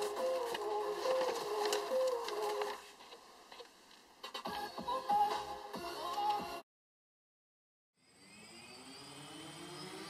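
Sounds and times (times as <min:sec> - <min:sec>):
quadcopter motors whining: 0:08.0 - 0:10.0.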